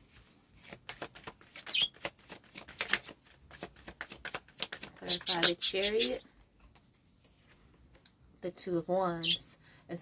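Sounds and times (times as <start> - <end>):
cards being shuffled: 0.1 - 6.1.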